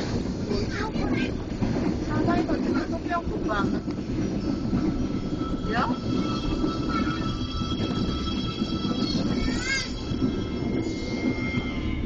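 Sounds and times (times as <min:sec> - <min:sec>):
train rumble inside carriage: 0:00.0 - 0:12.0.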